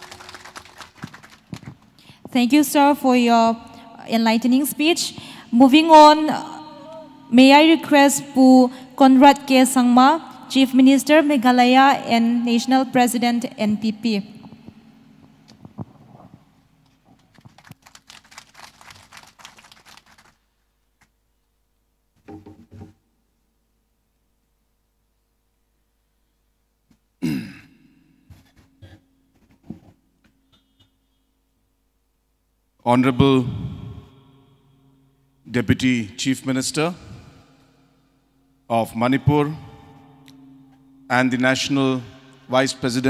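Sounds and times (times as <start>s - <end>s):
paper rustling and crinkling: 0.0s - 1.9s, 17.1s - 20.4s
audience clapping: 0.0s - 2.0s, 17.2s - 20.4s.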